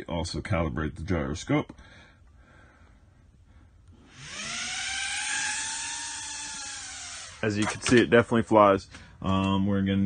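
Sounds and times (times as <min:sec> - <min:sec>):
drone motors whining: 0:04.0 - 0:07.6.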